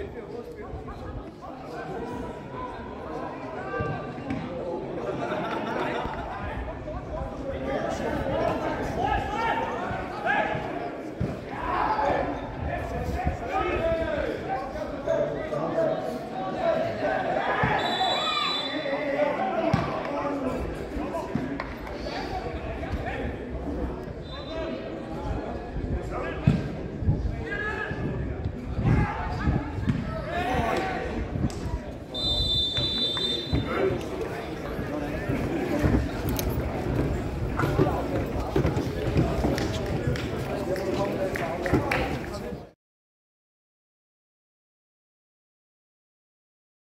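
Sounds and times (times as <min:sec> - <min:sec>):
people talking and calling out: 0:00.0 - 0:42.8
players and spectators shouting: 0:16.5 - 0:20.4
high steady whistle: 0:17.8 - 0:18.9, 0:32.2 - 0:33.7
football thuds: 0:29.8 - 0:30.1.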